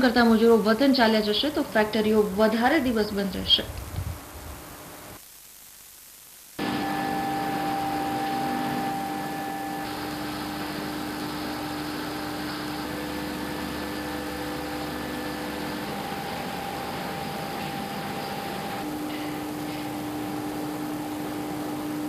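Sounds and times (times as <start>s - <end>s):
steady machine hum: 0.0s - 22.0s.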